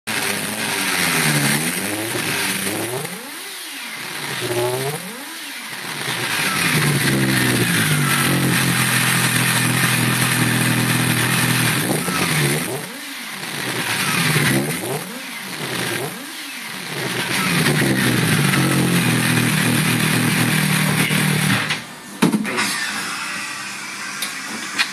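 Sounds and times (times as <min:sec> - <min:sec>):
motorcycle engine revving: 0:00.0 - 0:22.2.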